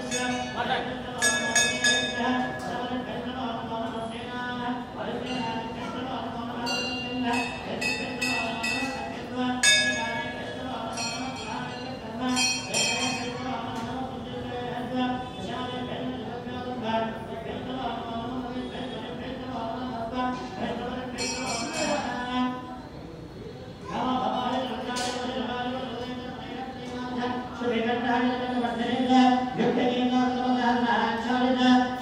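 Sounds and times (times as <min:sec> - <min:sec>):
sharp metallic rings: 0:00.0 - 0:02.7, 0:06.6 - 0:13.4, 0:21.2 - 0:22.2
man chanting: 0:00.0 - 0:22.7, 0:23.8 - 0:32.0.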